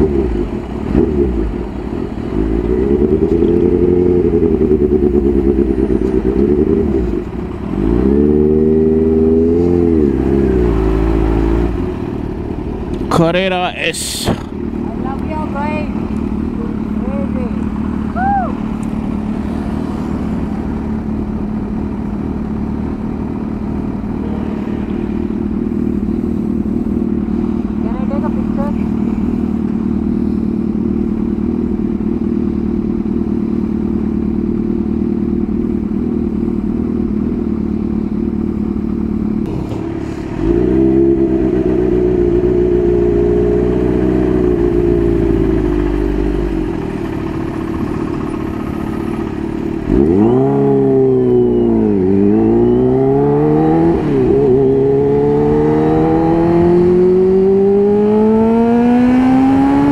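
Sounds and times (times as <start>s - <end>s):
motorcycle engine idling: 0.0s - 7.8s, 14.1s - 52.8s
motorcycle revving and pulling away: 0.0s - 59.9s
deeper engine note: 33.1s - 59.9s.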